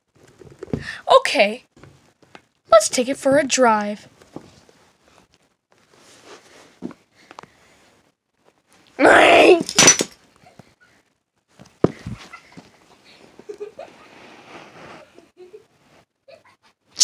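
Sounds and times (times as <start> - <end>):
faint rustling on carpet: 4.0 - 8.8, 11.4 - 16.1
loud vocal cry: 9.0 - 9.7.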